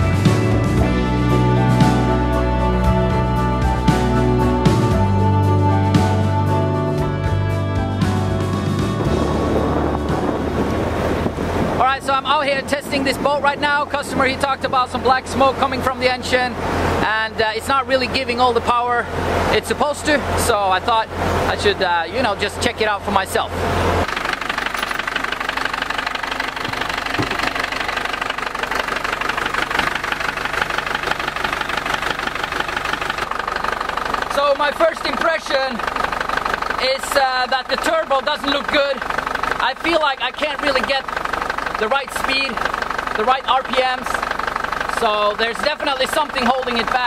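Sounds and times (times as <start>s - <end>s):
low diesel engine drone: 0.0s - 47.0s
rush of boat wake: 8.6s - 24.0s
wind buffeting microphone: 8.8s - 15.3s.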